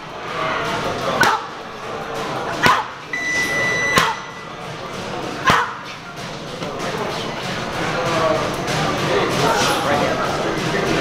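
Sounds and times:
short high electronic beep: 0:03.1 - 0:04.6.

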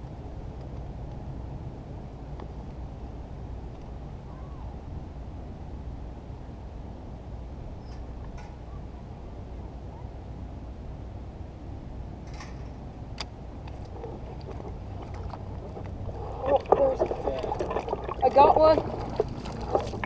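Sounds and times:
water washing around float: 0:13.9 - 0:20.0.

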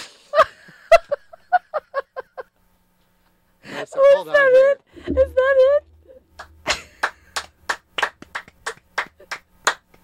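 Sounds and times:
people clapping hands: 0:06.4 - 0:10.0.

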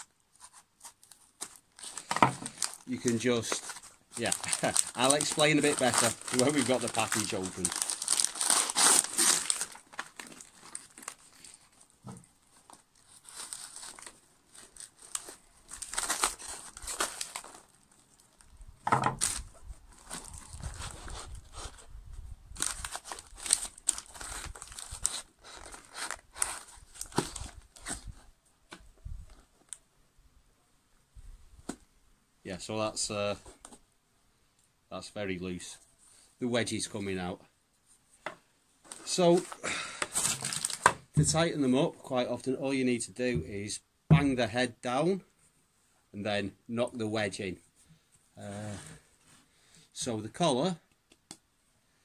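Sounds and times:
paper tearing and crumpling: 0:00.0 - 0:11.8, 0:12.6 - 0:17.7, 0:22.6 - 0:28.1, 0:40.1 - 0:40.9.

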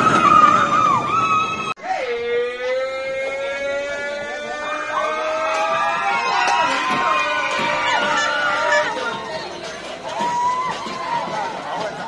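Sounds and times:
riders screaming: 0:00.0 - 0:09.2
roller coaster train on track: 0:00.0 - 0:12.0.

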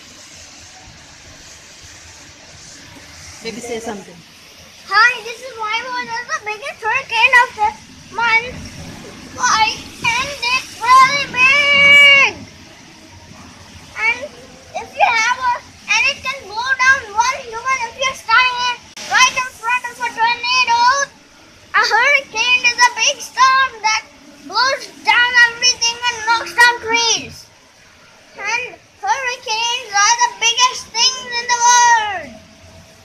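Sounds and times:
heavy rain hiss: 0:00.0 - 0:33.0
child talking: 0:04.8 - 0:12.4, 0:13.9 - 0:27.5, 0:28.3 - 0:32.4.

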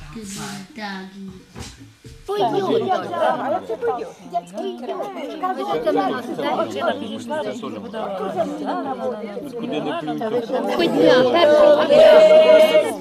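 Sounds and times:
people talking over one another: 0:02.3 - 0:13.0
voices singing a long note: 0:02.3 - 0:13.0.

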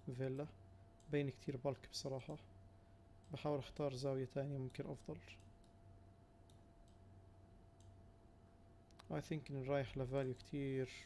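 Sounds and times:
faint steady hum: 0:00.0 - 0:11.0
computer mouse clicks: 0:06.4 - 0:07.1, 0:07.8 - 0:08.0, 0:08.9 - 0:09.2.

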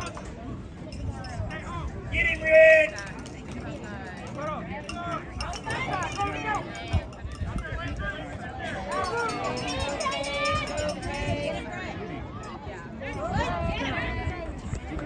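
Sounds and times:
spectators talking and calling out: 0:00.0 - 0:15.0.

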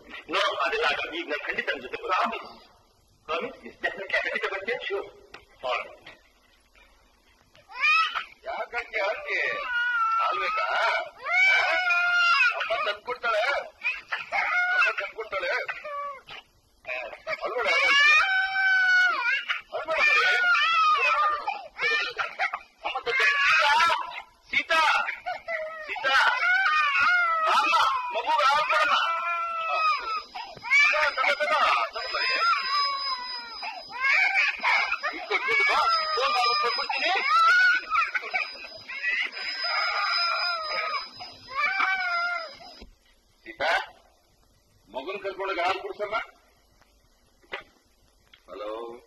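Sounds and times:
faint high whine: 0:00.0 - 0:49.0
young child wailing: 0:07.7 - 0:08.4, 0:09.1 - 0:13.0, 0:13.8 - 0:15.0, 0:17.3 - 0:24.2, 0:25.3 - 0:42.8.

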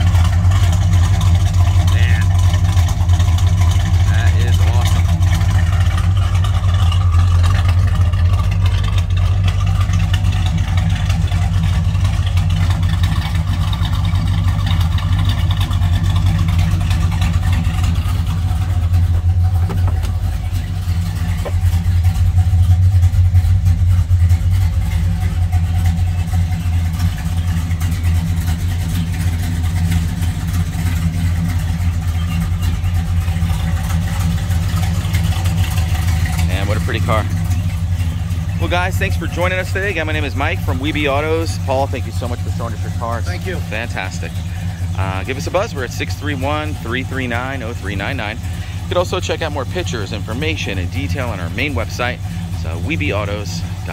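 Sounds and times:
vee eight engine idling: 0:00.0 - 0:53.9.

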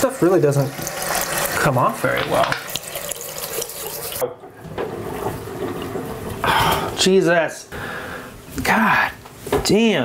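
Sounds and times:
tap water running into sink: 0:00.0 - 0:06.4.

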